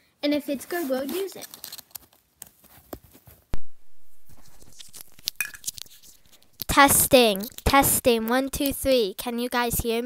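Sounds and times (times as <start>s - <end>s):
earbud cord rustling: 1.0s - 9.0s
loud sharp pop: 3.6s - 6.6s.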